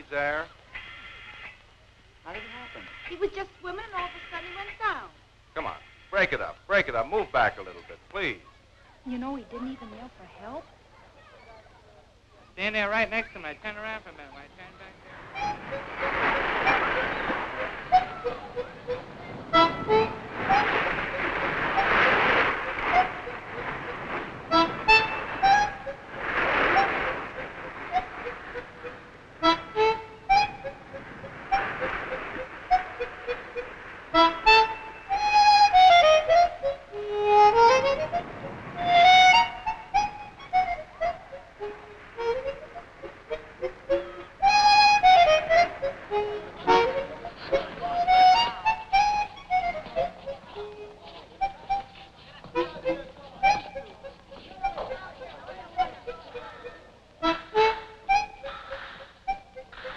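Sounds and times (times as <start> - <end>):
washes of noise: 15.2 - 35.4
solo harmonica melody: 15.2 - 59.9.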